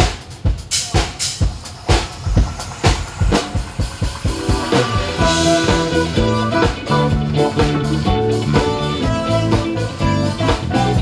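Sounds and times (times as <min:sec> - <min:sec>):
drum kit beat: 0:00.0 - 0:11.0
bass and guitar notes: 0:01.8 - 0:11.0.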